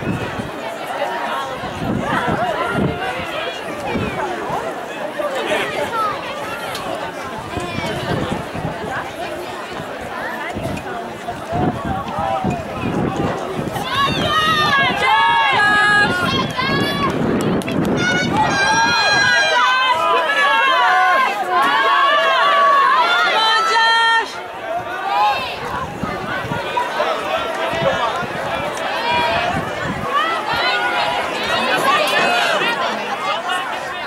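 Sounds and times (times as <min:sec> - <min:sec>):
spectators yelling and cheering: 0:00.0 - 0:34.0.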